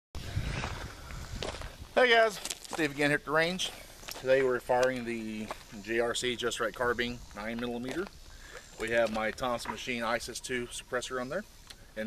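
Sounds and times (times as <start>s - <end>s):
footsteps crunching on gravel: 0.4s - 10.8s.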